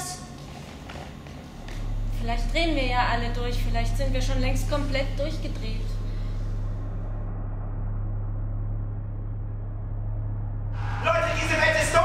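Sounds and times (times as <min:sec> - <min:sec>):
muffled low rumbling drone: 0:00.2 - 0:12.0.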